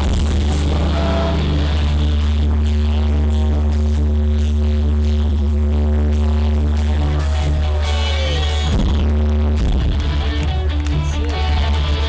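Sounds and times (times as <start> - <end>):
distorted booming bass: 0.0 - 12.0
live rock band playing: 7.2 - 12.0.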